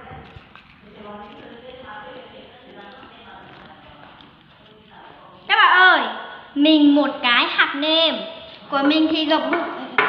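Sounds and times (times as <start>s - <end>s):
paper handling noise: 0.0s - 5.5s
faint voices: 0.0s - 7.1s.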